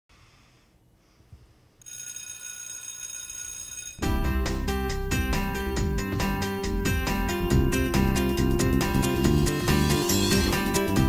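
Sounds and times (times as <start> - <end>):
electric school bell ringing: 1.8 - 4.4, 5.1 - 11.0.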